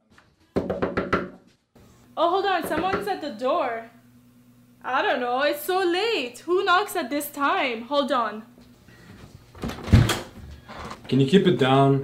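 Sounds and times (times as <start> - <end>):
knocking on a door: 0.6 - 1.5, 2.6 - 3.1.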